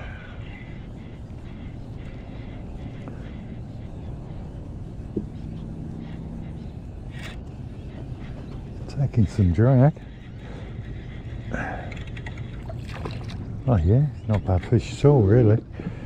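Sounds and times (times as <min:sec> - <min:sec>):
faint hum: 0:00.0 - 0:16.0
wind and water wash: 0:11.9 - 0:14.6.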